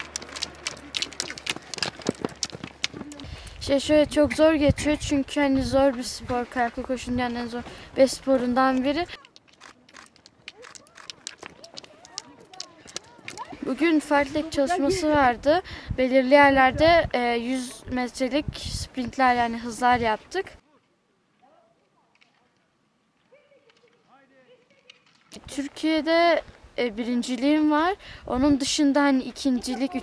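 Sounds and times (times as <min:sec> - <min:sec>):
running footsteps on dirt: 0:00.0 - 0:15.4.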